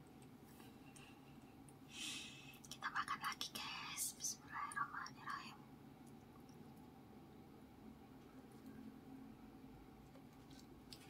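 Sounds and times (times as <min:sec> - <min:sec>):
woman whispering: 0:02.0 - 0:05.6.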